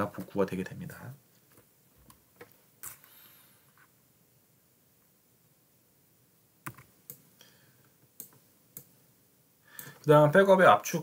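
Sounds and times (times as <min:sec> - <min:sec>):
computer mouse clicks: 0:08.2 - 0:08.9.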